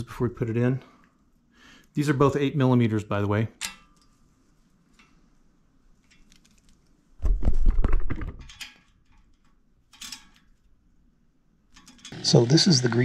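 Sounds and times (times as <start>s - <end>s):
metallic clicks of tool handling: 3.6s - 4.2s, 8.5s - 10.7s.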